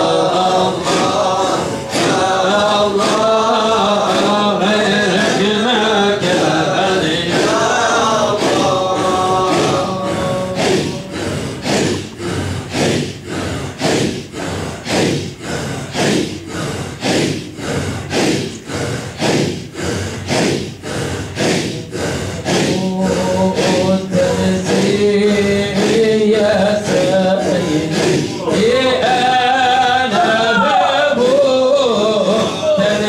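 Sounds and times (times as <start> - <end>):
men chanting together: 0.0 - 33.0.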